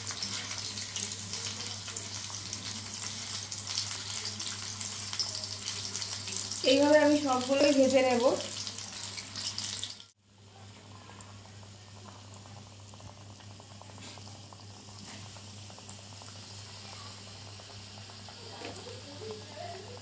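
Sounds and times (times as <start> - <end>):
food deep-frying in oil: 0.0 - 20.0.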